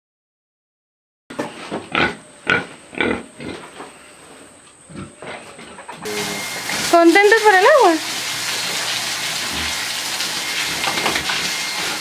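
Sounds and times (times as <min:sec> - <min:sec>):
pigs grunting: 0:01.8 - 0:04.2, 0:04.8 - 0:06.1, 0:09.4 - 0:09.9
garden hose spraying water: 0:06.0 - 0:12.0.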